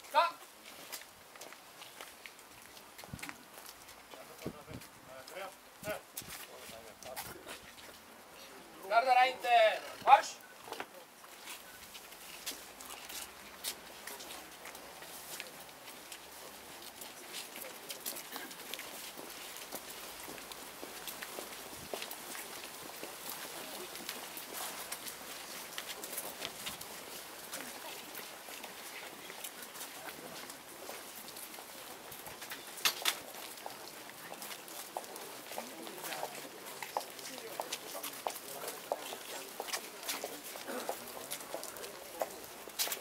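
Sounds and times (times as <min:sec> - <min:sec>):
boots marching on paving: 0:00.0 - 0:43.0
footsteps on paving stones: 0:00.0 - 0:43.0
murmur of voices: 0:34.1 - 0:43.0.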